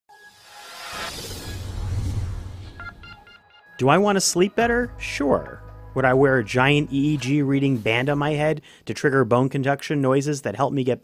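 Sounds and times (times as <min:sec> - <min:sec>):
low rumble: 0:01.3 - 0:02.9
high electronic beeps: 0:02.6 - 0:03.8
man speaking: 0:03.8 - 0:11.0.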